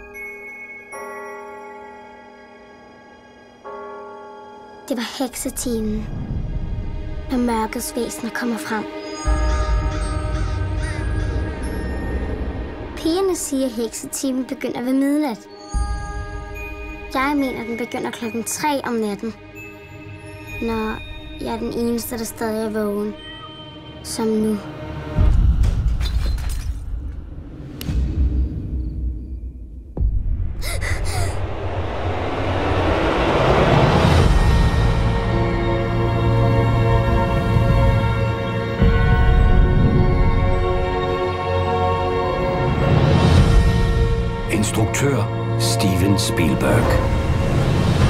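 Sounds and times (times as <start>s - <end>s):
dark film score drone: 8.8s - 13.0s, 27.1s - 44.5s
crows cawing: 9.4s - 11.6s
swell of noise: 31.1s - 35.4s.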